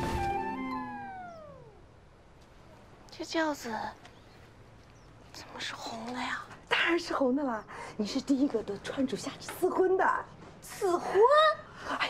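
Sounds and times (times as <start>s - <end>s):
downward sliding pitched effect: 0.0s - 1.9s.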